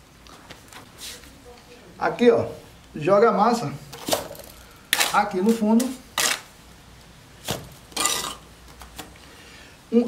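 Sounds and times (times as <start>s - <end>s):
trowel scraping mortar: 5.0s - 6.5s.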